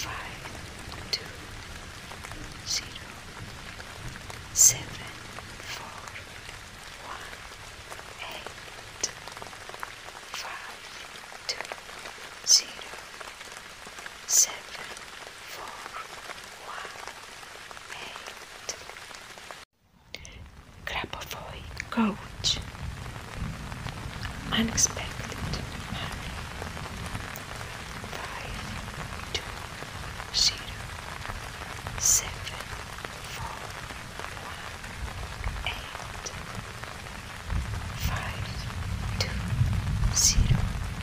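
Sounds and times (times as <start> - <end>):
sharp raindrop hits: 0.0 - 41.0
steady rain: 0.0 - 41.0.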